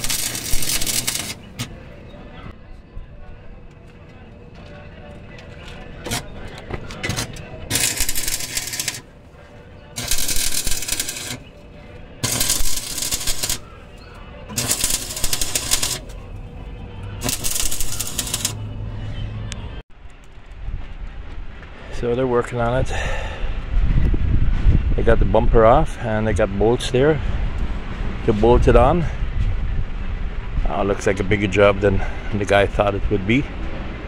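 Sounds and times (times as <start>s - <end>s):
welding arc crackling: 0.0s - 1.8s, 7.1s - 9.1s, 10.0s - 11.5s, 12.2s - 13.8s, 14.5s - 16.2s, 17.2s - 18.6s.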